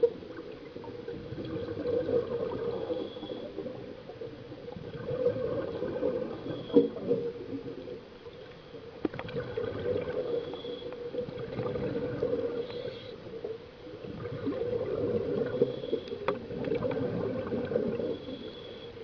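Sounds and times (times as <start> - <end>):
underwater bubbling and gurgling: 0.0 - 19.0.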